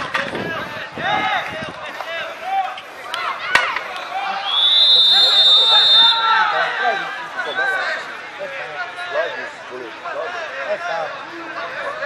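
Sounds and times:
people calling and shouting: 0:00.0 - 0:12.0.

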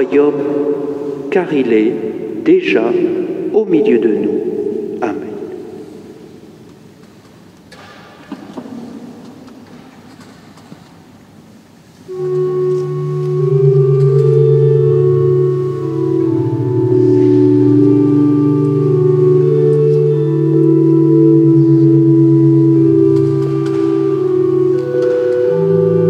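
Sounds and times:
organ music sustained chords: 0:00.0 - 0:07.7, 0:11.2 - 0:26.0.

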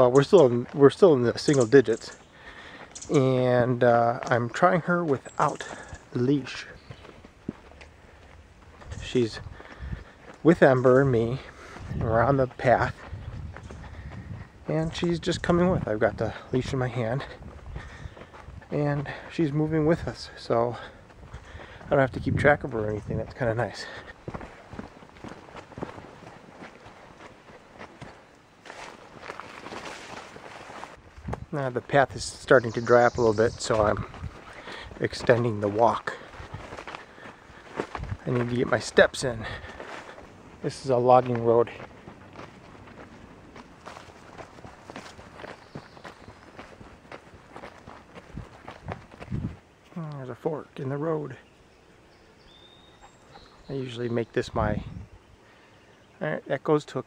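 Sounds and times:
footsteps on dirt trail: 0:00.0 - 0:56.1
leafy brush rustling: 0:22.6 - 0:50.4.

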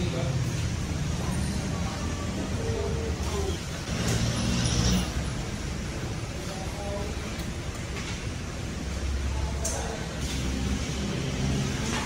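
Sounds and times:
distant people talking: 0:00.0 - 0:04.2, 0:05.0 - 0:12.0.

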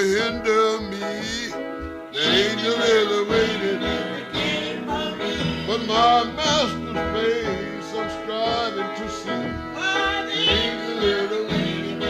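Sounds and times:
man singing wordless lines: 0:00.0 - 0:12.0.

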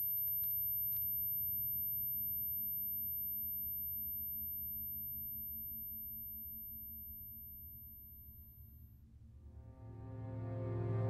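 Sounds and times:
low steady drone: 0:09.0 - 0:11.0.

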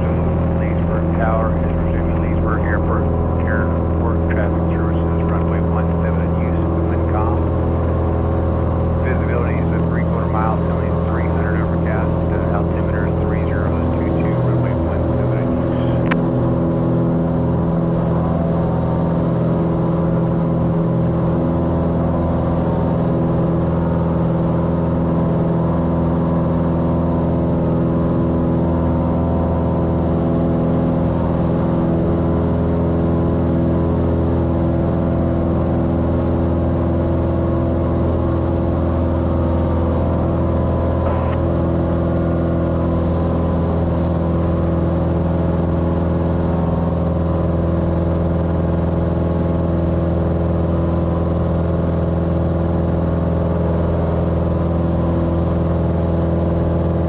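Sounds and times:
propeller plane engine droning: 0:00.0 - 0:57.0.

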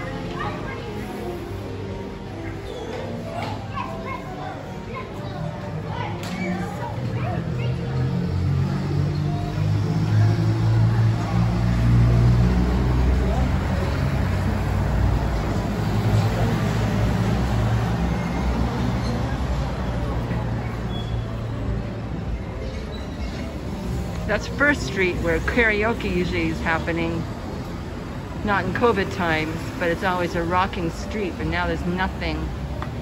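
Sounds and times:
children calling out: 0:00.0 - 0:01.4, 0:02.3 - 0:08.6
people talking: 0:24.3 - 0:27.3, 0:28.4 - 0:32.6.

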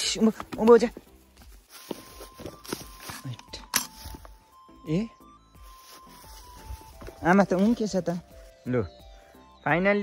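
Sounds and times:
footsteps on brushy grass: 0:00.0 - 0:04.6, 0:05.5 - 0:08.7.

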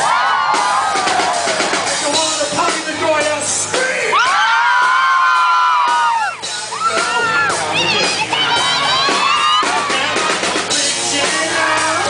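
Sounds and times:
band music: 0:00.0 - 0:12.0
crowd screaming and cheering: 0:00.0 - 0:12.0.

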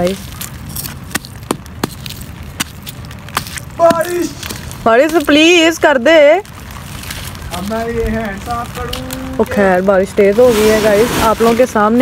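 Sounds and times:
soil clods crackling: 0:00.0 - 0:12.0
rain hiss: 0:03.1 - 0:12.0.

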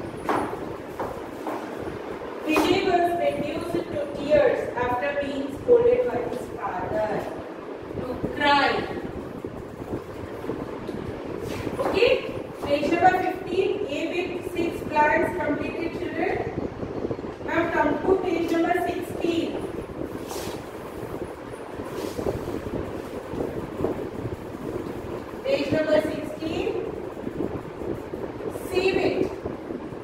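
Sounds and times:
low background rumble: 0:00.0 - 0:30.0
wind buffeting microphone: 0:00.0 - 0:30.0.

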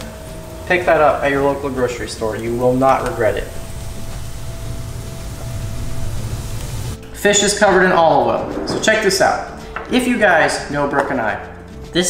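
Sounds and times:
rice sizzling in a pan: 0:00.0 - 0:07.0
low hum: 0:00.0 - 0:08.8.

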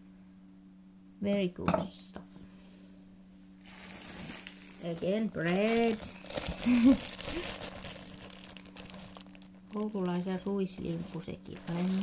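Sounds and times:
plastic bag rustling: 0:03.6 - 0:12.0.

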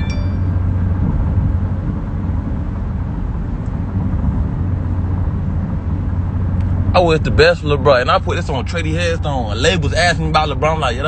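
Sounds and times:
high chime: 0:00.0 - 0:00.9
car cabin road rumble: 0:00.0 - 0:11.0.

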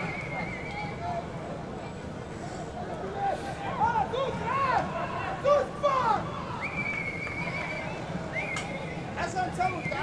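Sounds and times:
stadium ambience: 0:00.0 - 0:10.0.

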